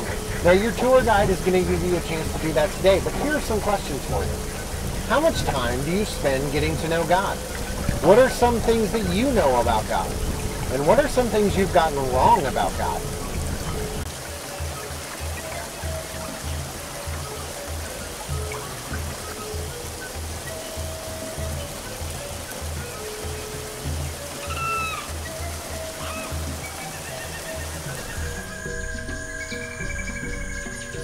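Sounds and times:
music with low pulsing beat: 0:00.0 - 0:31.0
rushing water hiss: 0:00.0 - 0:31.0.

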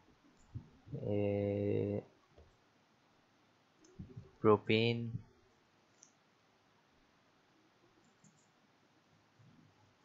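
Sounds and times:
faint keyboard keystrokes: 0:08.0 - 0:08.6.

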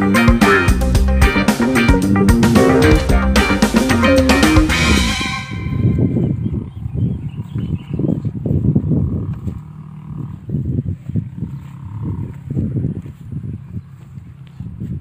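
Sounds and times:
distant tractor engine: 0:00.0 - 0:06.8, 0:08.3 - 0:14.6
wind buffeting microphone: 0:04.7 - 0:15.0.

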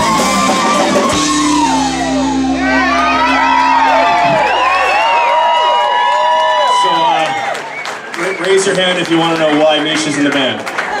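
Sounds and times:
live band chord ringing out: 0:00.0 - 0:06.0
audience whooping and cheering: 0:00.0 - 0:11.0.

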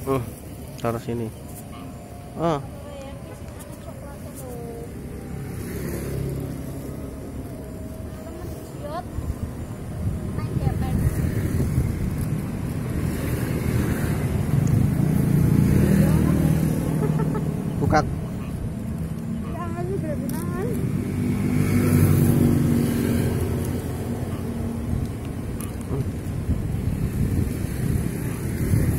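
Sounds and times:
motor vehicle passing: 0:00.0 - 0:28.9.

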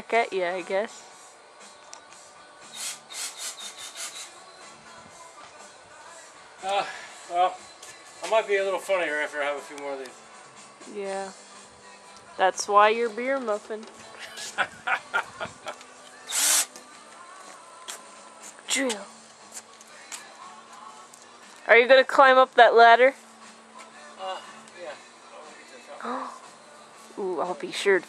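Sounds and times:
cordless drill burst: 0:02.7 - 0:04.4, 0:16.3 - 0:16.8.

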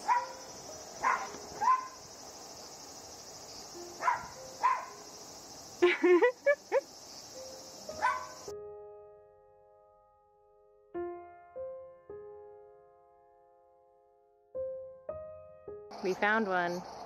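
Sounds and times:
small dogs yapping: 0:00.0 - 0:00.4, 0:01.0 - 0:02.0, 0:04.0 - 0:05.0, 0:08.0 - 0:08.4
piano music: 0:00.0 - 0:02.1, 0:03.4 - 0:16.5
cicadas droning: 0:00.0 - 0:08.5, 0:15.9 - 0:17.0.

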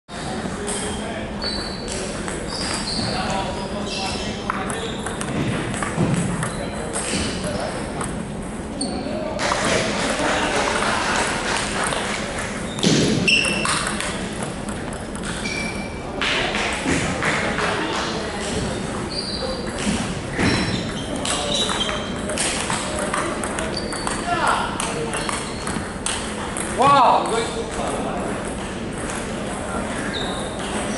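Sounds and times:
murmur of voices: 0:00.1 - 0:30.9
table tennis ball clicking: 0:04.5 - 0:08.2, 0:13.4 - 0:15.4, 0:21.2 - 0:24.2.

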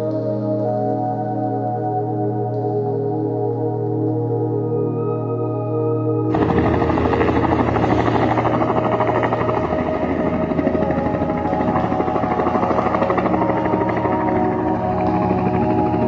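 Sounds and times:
music playing: 0:00.0 - 0:16.0
helicopter rotor chopping: 0:06.3 - 0:16.0.

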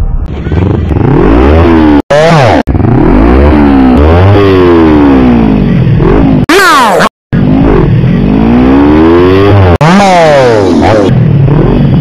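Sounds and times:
motorcycle engine revving hard: 0:00.3 - 0:06.5, 0:07.4 - 0:12.0.

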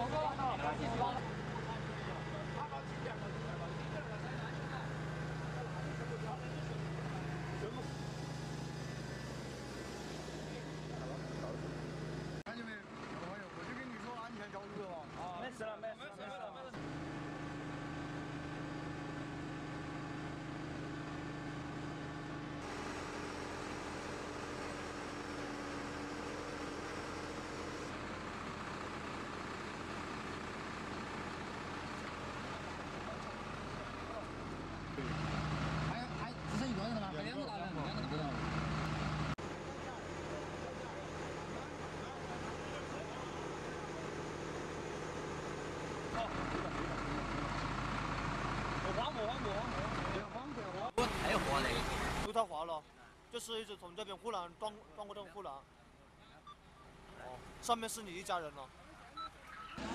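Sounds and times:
people talking: 0:00.0 - 0:07.9, 0:08.8 - 0:11.6, 0:12.5 - 0:16.8, 0:32.5 - 0:35.2, 0:35.9 - 0:38.4, 0:39.5 - 0:44.2, 0:46.1 - 0:47.6, 0:48.8 - 0:52.8, 0:56.2 - 0:59.9
heavy vehicle engine running: 0:00.0 - 0:15.8, 0:16.8 - 0:52.3.

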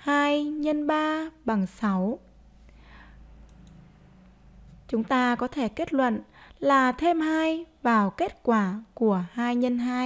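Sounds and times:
woman speaking: 0:00.0 - 0:02.3, 0:04.9 - 0:10.0
computer mouse clicks: 0:03.4 - 0:03.8.

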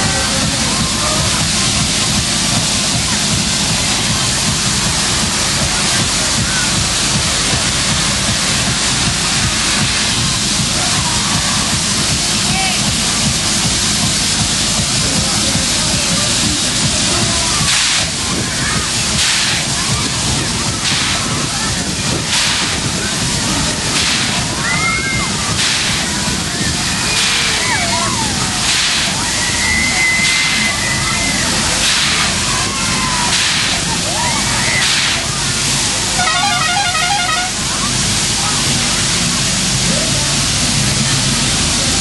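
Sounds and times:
faint shouting voices: 0:00.0 - 0:42.0
fairground ride whooshing: 0:00.0 - 0:42.0.

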